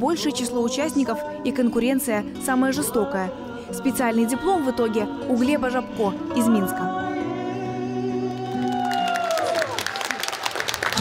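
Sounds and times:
audience applause: 0:08.3 - 0:11.0.

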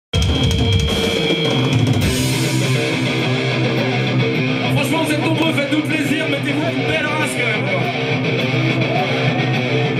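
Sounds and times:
metal band playing live: 0:00.1 - 0:09.9.

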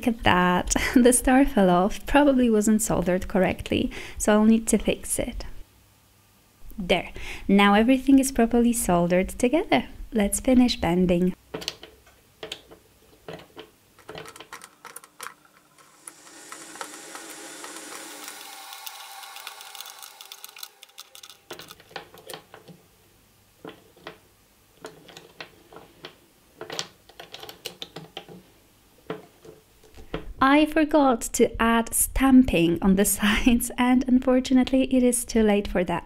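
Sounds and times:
high ringing tone: 0:15.8 - 0:21.8.

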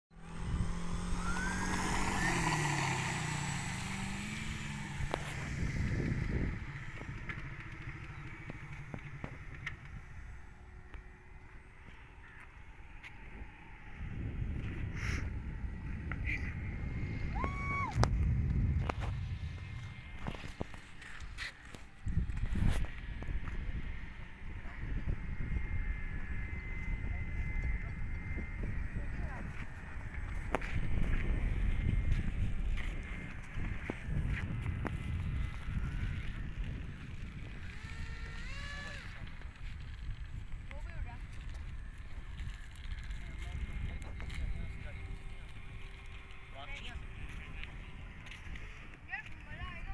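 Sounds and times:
model plane propellers whining: 0:00.2 - 0:49.9
wind rumble on microphone: 0:00.2 - 0:49.9.

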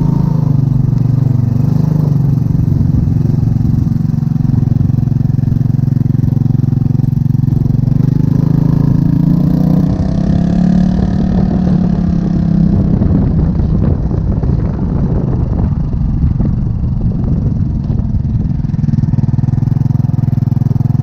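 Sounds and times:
scooter engine with loud exhaust: 0:00.0 - 0:21.0.

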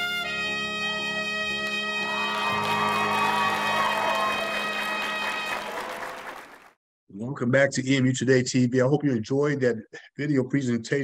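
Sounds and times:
trumpet holding long note: 0:00.0 - 0:06.3.

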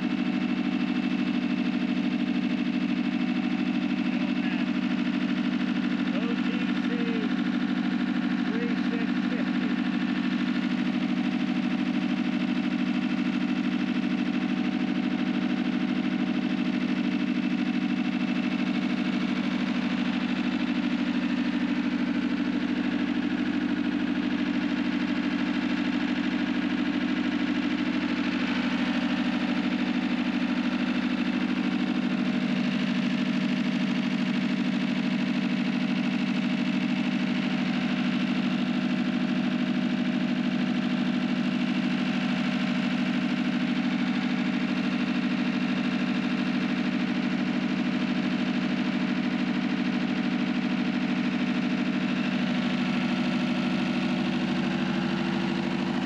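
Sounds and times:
tractor diesel engine idling: 0:00.0 - 0:56.0.

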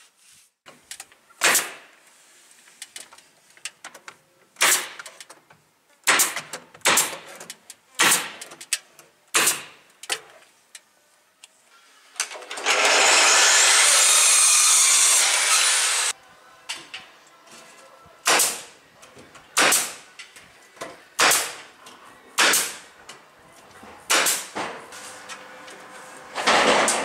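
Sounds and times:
power drill running: 0:12.6 - 0:16.1.

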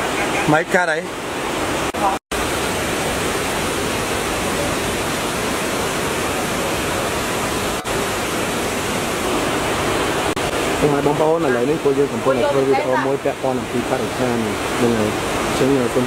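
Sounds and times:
stream water tumbling over rocks: 0:00.0 - 0:16.0.

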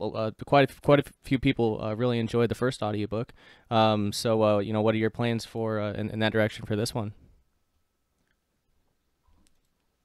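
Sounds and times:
man speaking: 0:00.0 - 0:07.2.

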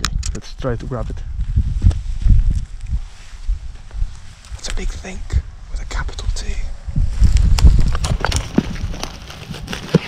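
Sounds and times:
footsteps on rubble: 0:07.1 - 0:10.0
stones clattering: 0:07.6 - 0:10.0.

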